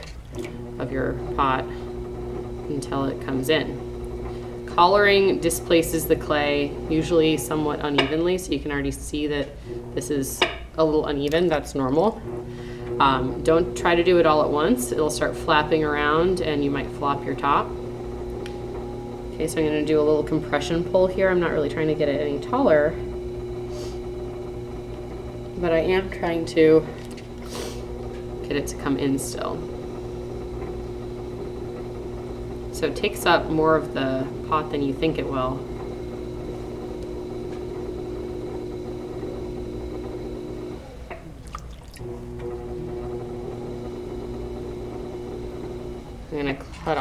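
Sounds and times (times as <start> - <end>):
potter's wheel humming: 0.0 - 47.0
water drips and splashes: 41.4 - 42.0.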